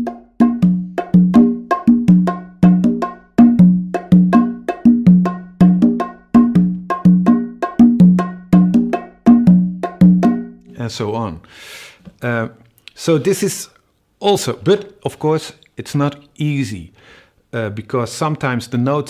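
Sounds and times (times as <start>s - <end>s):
congas and bongo samba groove: 0.0s - 10.6s.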